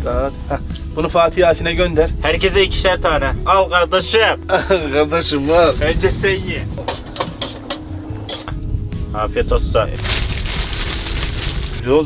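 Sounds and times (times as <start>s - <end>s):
low steady rumble: 7.7s - 11.8s
man's voice: 11.8s - 12.0s.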